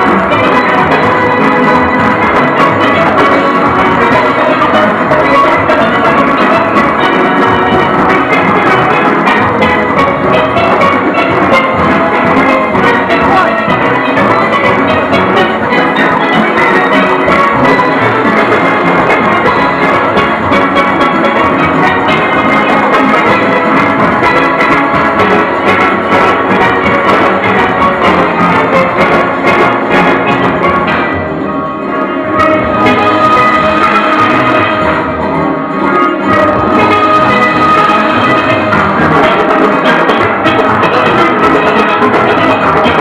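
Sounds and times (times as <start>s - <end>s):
drums and percussion: 0.0s - 43.0s
steelpans playing a tune: 0.0s - 43.0s.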